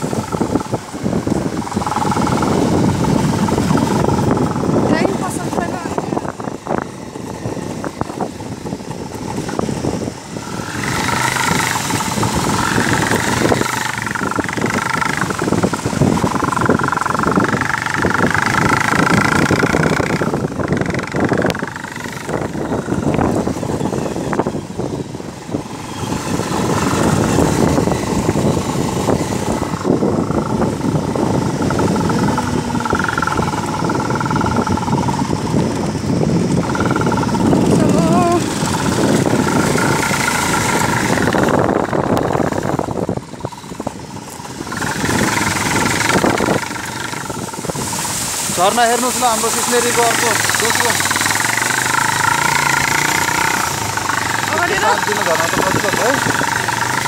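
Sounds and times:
motorcycle engine running: 0:00.0 - 0:57.0
wind on microphone: 0:00.0 - 0:57.0
knocks and rattles: 0:10.6 - 0:23.5, 0:36.4 - 0:48.0.

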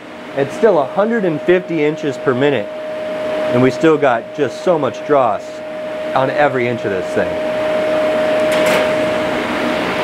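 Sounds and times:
machine hum: 0:00.0 - 0:10.0
held pitched tone: 0:00.3 - 0:10.0.

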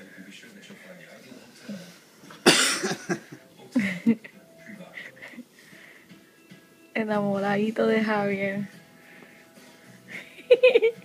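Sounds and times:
person coughing harshly: 0:02.4 - 0:03.2.

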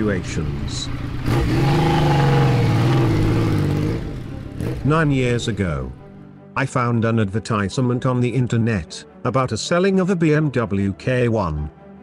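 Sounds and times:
motorcycle engine riding off: 0:00.0 - 0:05.1.

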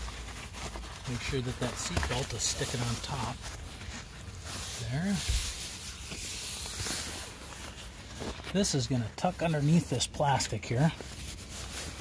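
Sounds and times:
hands rustling fabric: 0:00.0 - 0:12.0.

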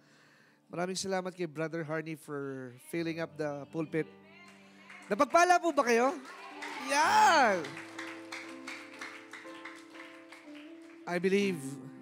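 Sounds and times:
soft worship band music: 0:00.0 - 0:12.0.

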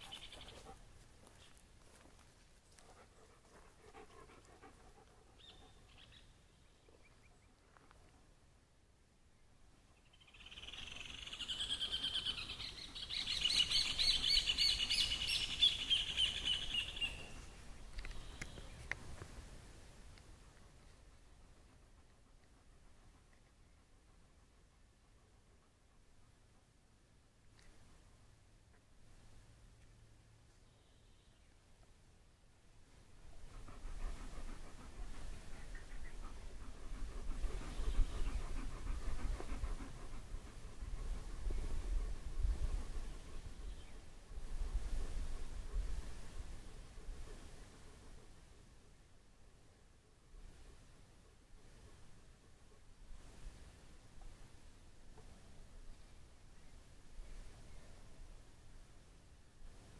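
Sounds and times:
dog panting: 0:02.7 - 0:05.9, 0:33.3 - 0:43.8
wind rumbling on microphone: 0:36.2 - 0:47.3.

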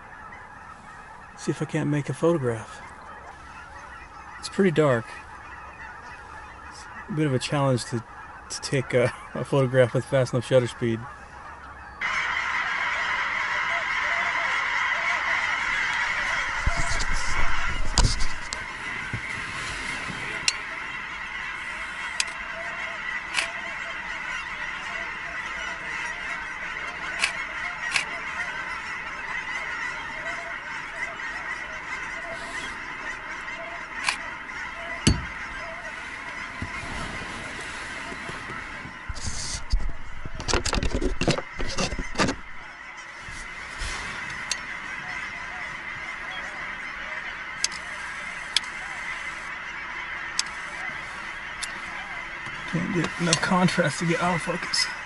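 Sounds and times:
geese honking: 0:00.0 - 0:55.0
knocks and handling noise: 0:35.1 - 0:35.4, 0:39.1 - 0:42.5.

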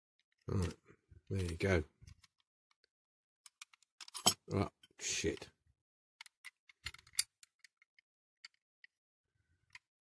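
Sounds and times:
toy car parts clicking: 0:06.2 - 0:08.6.

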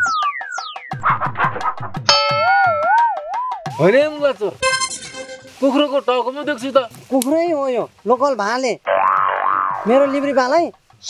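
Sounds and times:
cartoon boing sound effect: 0:02.0 - 0:03.4, 0:08.9 - 0:10.2
man speaking: 0:09.8 - 0:10.8.

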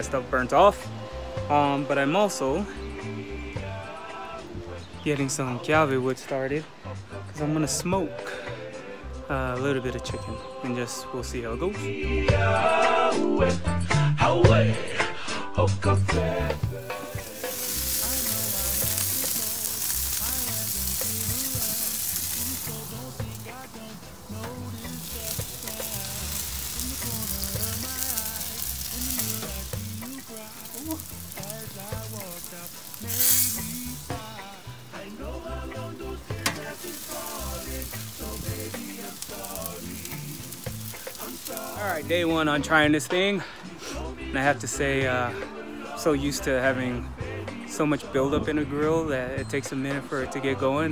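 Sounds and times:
chicken sizzling on a grill: 0:00.0 - 0:13.1, 0:16.0 - 0:50.8
background music: 0:00.0 - 0:50.9.

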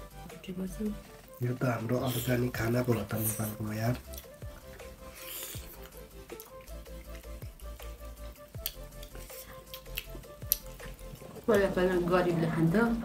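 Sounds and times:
quiet background music: 0:00.0 - 0:13.0
chewing: 0:02.1 - 0:11.8
fingers squishing food: 0:02.2 - 0:11.7.

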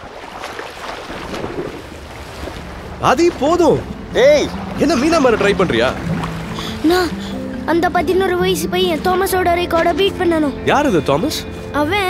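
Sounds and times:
water splashing from swimming: 0:00.0 - 0:07.8.

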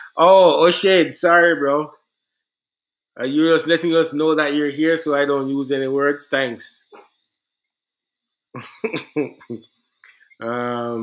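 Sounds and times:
man laughing breathily: 0:08.6 - 0:09.7.

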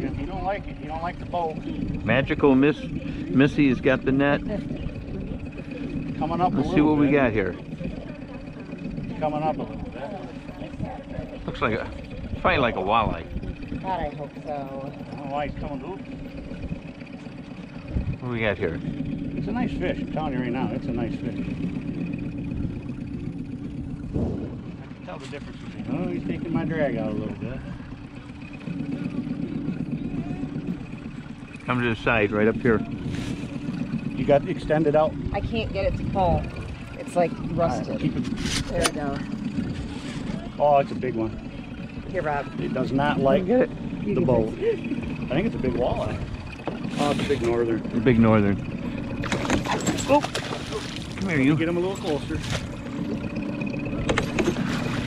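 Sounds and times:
boat motor rumbling: 0:00.0 - 0:55.0
fish thrashing and splashing: 0:46.2 - 0:55.0.

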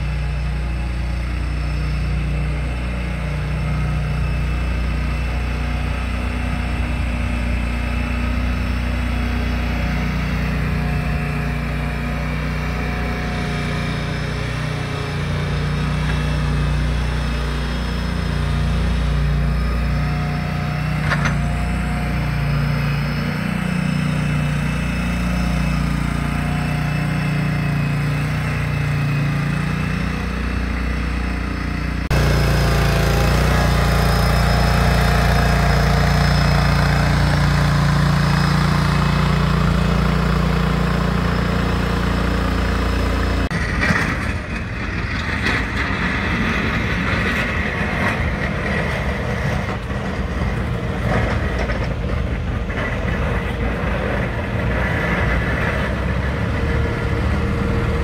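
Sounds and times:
loader engine running: 0:00.0 - 0:58.0.

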